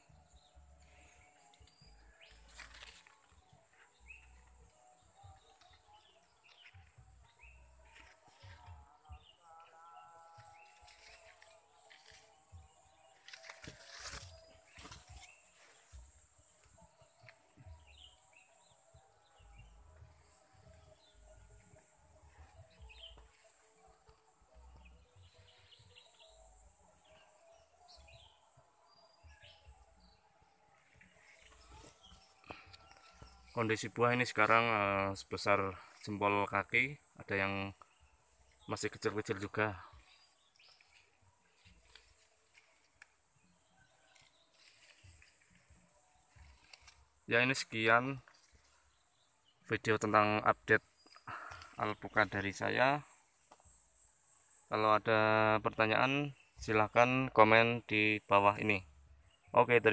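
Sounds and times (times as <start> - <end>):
leaves and branches rustling: 0.8 - 4.6, 10.4 - 17.4, 38.0 - 49.2.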